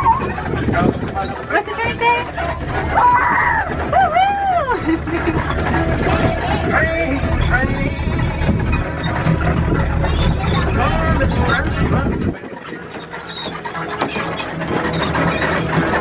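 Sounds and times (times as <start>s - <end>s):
small ride train rumbling: 0.0s - 16.0s.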